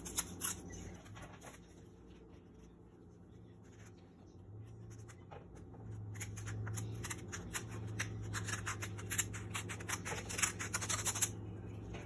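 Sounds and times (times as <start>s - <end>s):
scissors cutting paper: 0.0s - 1.6s, 5.9s - 11.4s
low steady hum: 0.0s - 12.0s.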